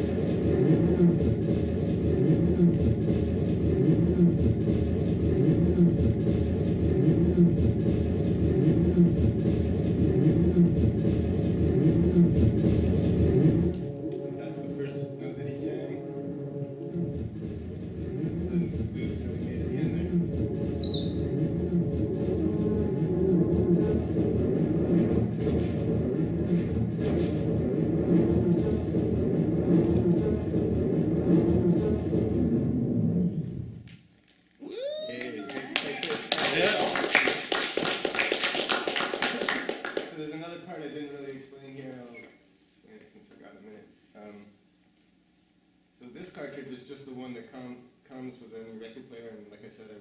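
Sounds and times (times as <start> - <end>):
rising pitch sweep: 0.0 - 33.8
scratchy loop with rapid clicks: 0.0 - 34.0, 35.6 - 40.3
dense layered loop playback: 0.0 - 42.1, 45.6 - 50.0.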